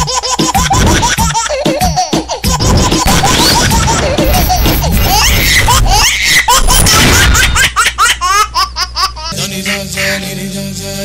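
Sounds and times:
laughter sound effect: 0:00.0 - 0:09.8
steady music: 0:01.2 - 0:06.1.

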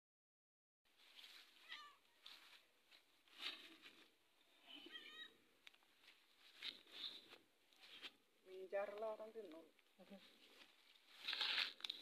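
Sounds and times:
cat meowing quietly: 0:01.6 - 0:02.2, 0:04.6 - 0:05.4.

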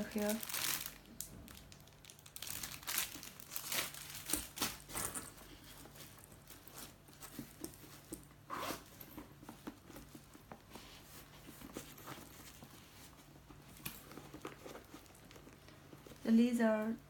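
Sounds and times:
plastic wrapping crinkling: 0:00.0 - 0:08.4, 0:09.2 - 0:16.6.

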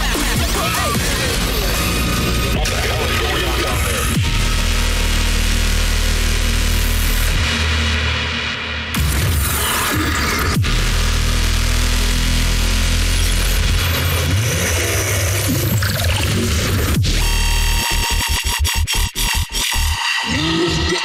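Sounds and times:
dubstep music: 0:00.0 - 0:21.0.

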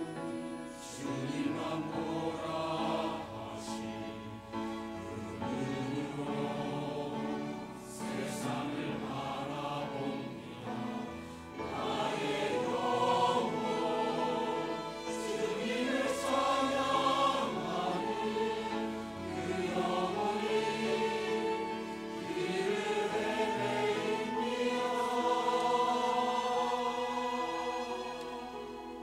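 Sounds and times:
choir singing an anthem: 0:00.0 - 0:29.0
instrumental accompaniment: 0:00.0 - 0:29.0.

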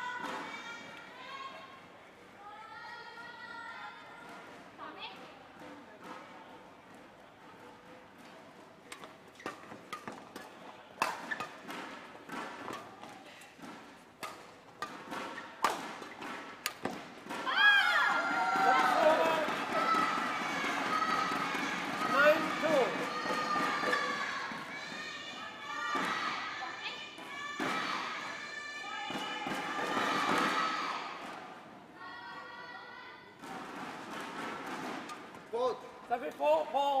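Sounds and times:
racket striking shuttlecock: 0:08.9 - 0:17.5, 0:18.6 - 0:24.6
shouts and cheering: 0:17.5 - 0:31.2.

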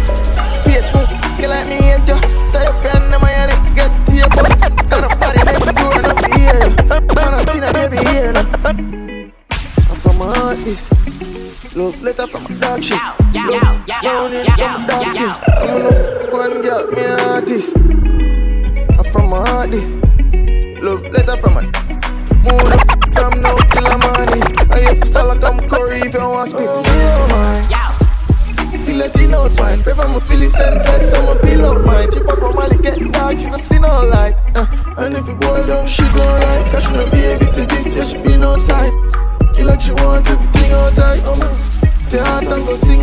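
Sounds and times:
dancehall mix with bass beat: 0:00.0 - 0:43.0
turntable scratching: 0:03.0 - 0:08.5, 0:12.1 - 0:18.1, 0:22.3 - 0:26.3, 0:26.9 - 0:33.9.

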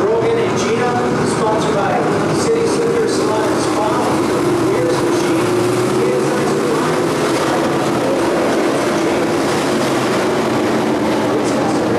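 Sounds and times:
race car engines droning: 0:00.0 - 0:11.9.

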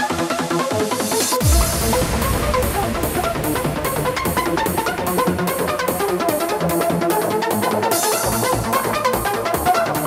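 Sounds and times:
off-beat hi-hats: 0:01.0 - 0:09.1
trance synth melody: 0:01.2 - 0:08.2
kick and bass: 0:01.3 - 0:09.4.

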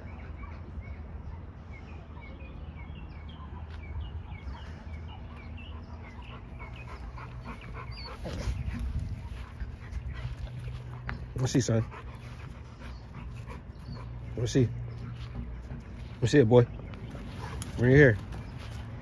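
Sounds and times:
dogs panting: 0:03.5 - 0:19.0.

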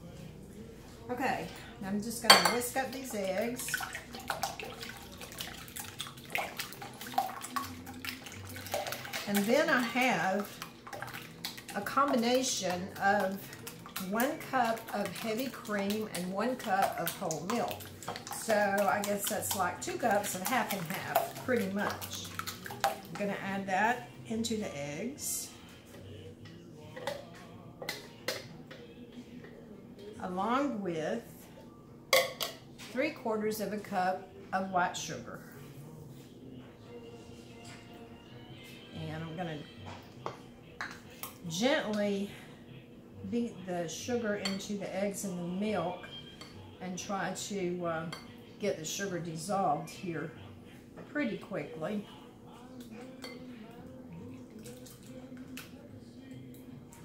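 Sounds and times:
whisk clinking against glass: 0:02.3 - 0:02.6, 0:53.0 - 0:53.5
wire whisk beating liquid: 0:02.3 - 0:24.0, 0:52.0 - 0:57.0.

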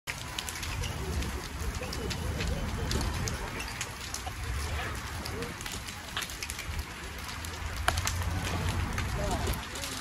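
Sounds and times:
crackles from burning debris: 0:00.1 - 0:10.0
low rumble of flames: 0:00.1 - 0:10.0.

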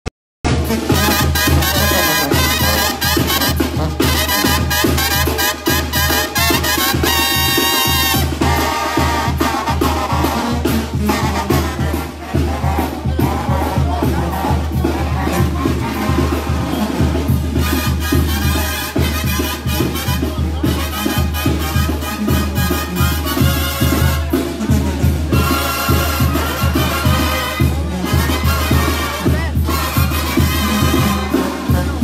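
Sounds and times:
brass band horns: 0:00.4 - 0:32.0
driving drum beat: 0:00.4 - 0:32.0.

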